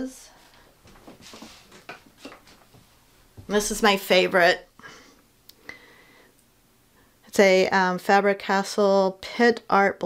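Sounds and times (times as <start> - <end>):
soft rustles: 0.3 - 4.0.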